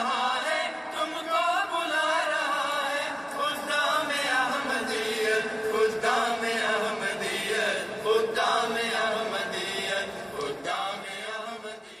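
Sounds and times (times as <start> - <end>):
vocal chanting: 0.0 - 12.0.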